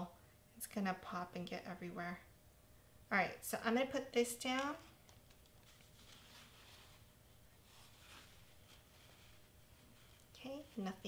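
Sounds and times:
paper towel rustling: 0:05.3 - 0:11.0.

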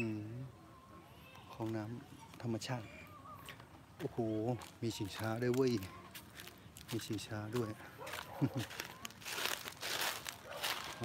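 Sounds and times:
footsteps crunching dry leaves: 0:04.5 - 0:11.0.

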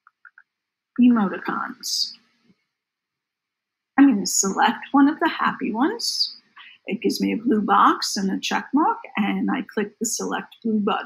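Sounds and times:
woman speaking: 0:01.0 - 0:02.2, 0:04.0 - 0:11.0.

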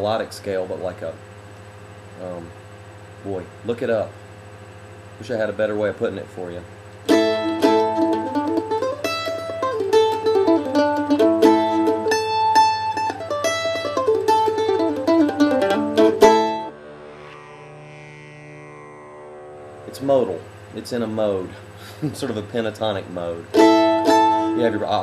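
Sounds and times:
mandolin picking: 0:07.1 - 0:16.9, 0:23.5 - 0:25.0.

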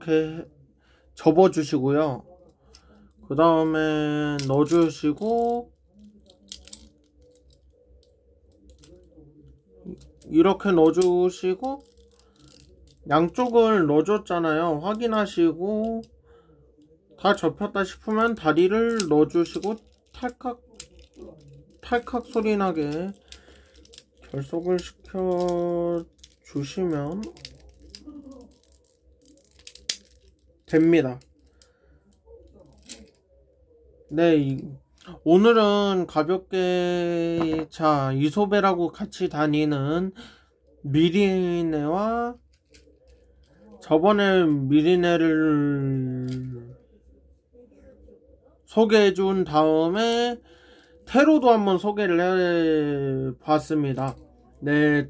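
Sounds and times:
plastic toy parts clicking: 0:04.3 - 0:09.1, 0:09.9 - 0:13.6, 0:17.9 - 0:31.6, 0:32.4 - 0:33.2.

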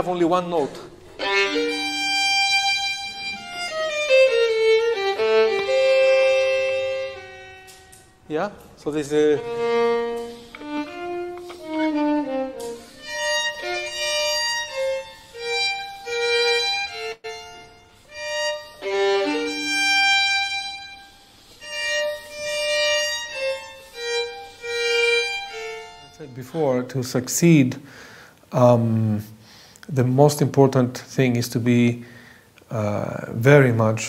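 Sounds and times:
violin playing slow melody: 0:01.1 - 0:27.6.

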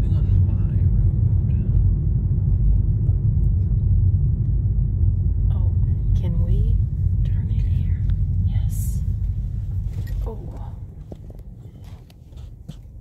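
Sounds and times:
car engine and tyre rumble: 0:00.0 - 0:13.0.

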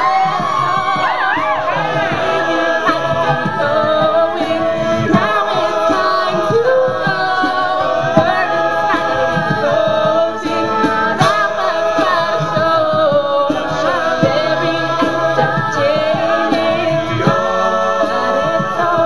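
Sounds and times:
backing vocals: 0:00.0 - 0:19.0
female lead singing: 0:00.0 - 0:19.0.

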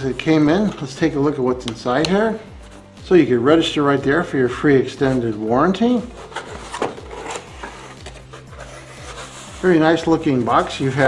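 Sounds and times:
cardboard rubbing and scraping: 0:06.0 - 0:11.0.

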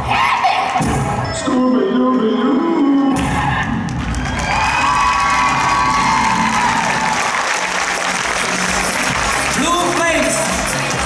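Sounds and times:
high shouts: 0:02.5 - 0:07.5
audience applauding and cheering: 0:02.8 - 0:11.0.

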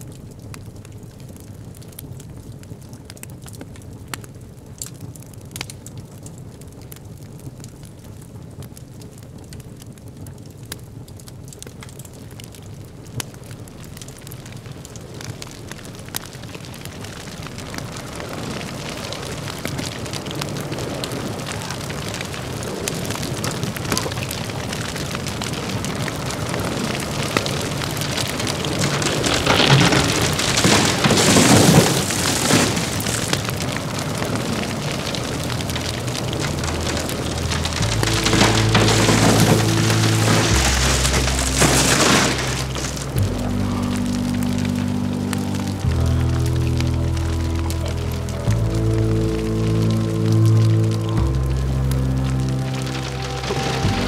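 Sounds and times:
crackles: 0:00.0 - 0:54.0
rainstorm: 0:00.0 - 0:54.0
low hum: 0:35.0 - 0:54.0.

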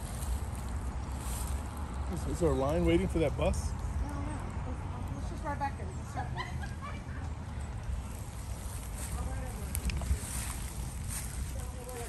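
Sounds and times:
faint voices: 0:02.1 - 0:12.0
wind buffeting microphone: 0:07.7 - 0:12.0.

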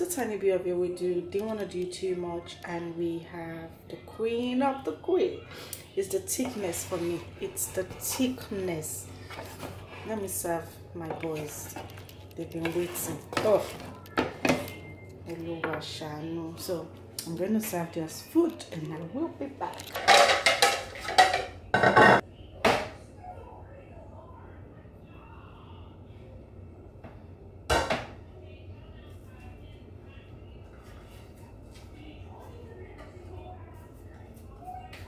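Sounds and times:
spatula stirring thick stew: 0:06.0 - 0:10.6, 0:11.2 - 0:14.0.

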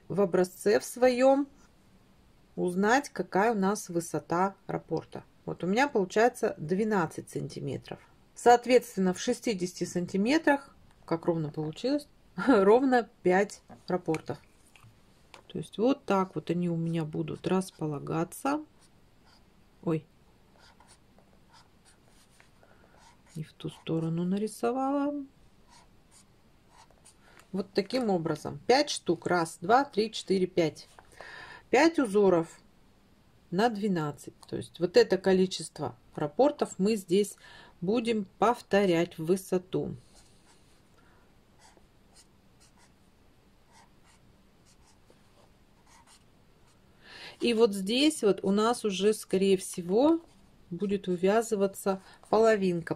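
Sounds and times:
felt-tip pen scratching on paper: 0:20.5 - 0:24.5, 0:25.7 - 0:27.2, 0:41.6 - 0:43.0, 0:43.7 - 0:46.8.

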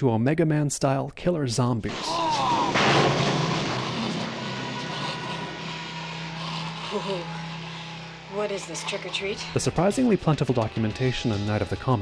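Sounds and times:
low mechanical drone: 0:01.9 - 0:12.0.

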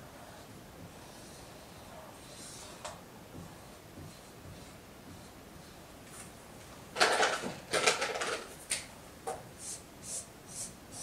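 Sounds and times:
marker swishing on whiteboard: 0:00.2 - 0:06.4, 0:09.6 - 0:11.0
scuffing and handling noise: 0:03.3 - 0:07.7.

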